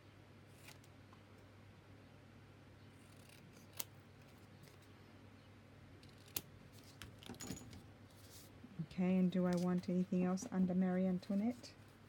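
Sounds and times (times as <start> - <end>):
paper rustling: 9.4 - 9.9.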